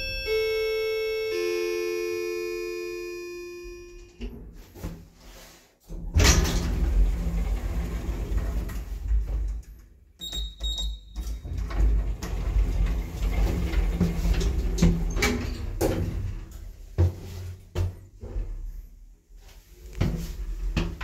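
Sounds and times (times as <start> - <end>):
short high beeps: 0.0 - 4.2
elevator arrival chime: 0.0 - 4.3
elevator doors sliding open: 5.9 - 16.6.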